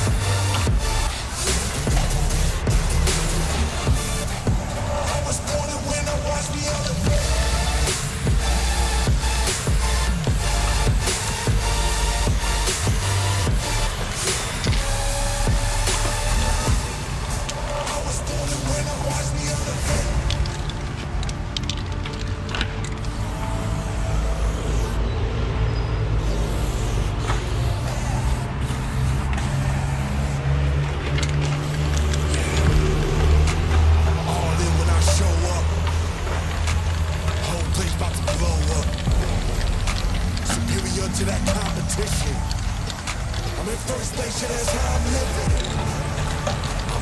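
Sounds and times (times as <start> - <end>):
hip-hop backing track: 0.0 - 25.0, 26.2 - 47.0.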